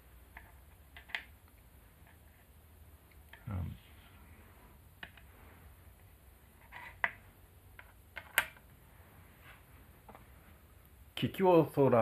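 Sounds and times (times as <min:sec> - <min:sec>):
wooden game pieces clicking on board: 0:00.3 - 0:01.4, 0:06.6 - 0:08.6.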